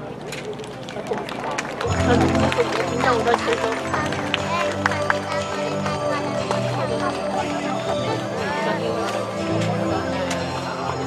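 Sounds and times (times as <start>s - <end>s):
crowd chatter: 0.0s - 11.0s
loudspeaker music with low notes: 1.9s - 11.0s.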